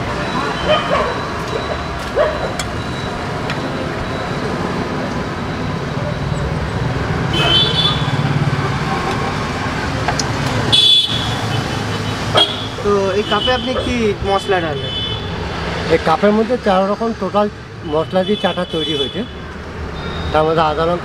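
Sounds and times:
passing vehicle engines hum: 0:00.0 - 0:21.0
short high-pitched beeps: 0:20.0 - 0:20.4.

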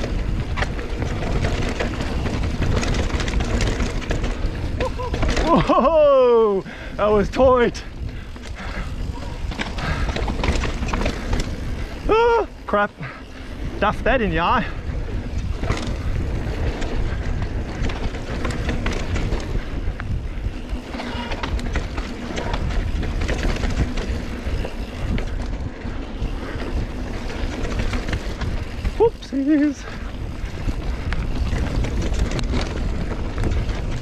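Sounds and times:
bike rattling and clicking: 0:00.0 - 0:34.0
tyres rolling over ground: 0:00.0 - 0:34.0
wind buffeting microphone: 0:00.0 - 0:34.0.

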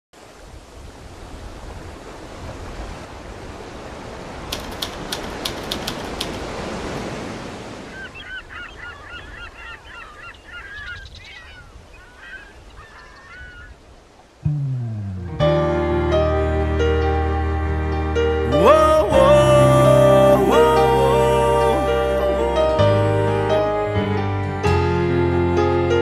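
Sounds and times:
waves breaking on beach: 0:00.2 - 0:08.5
sharp clicks: 0:04.5 - 0:06.6
flock of birds calling: 0:07.8 - 0:13.8.

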